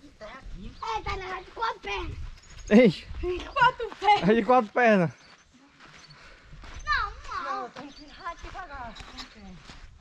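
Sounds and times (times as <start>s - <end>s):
people talking and calling out: 0.0s - 9.9s.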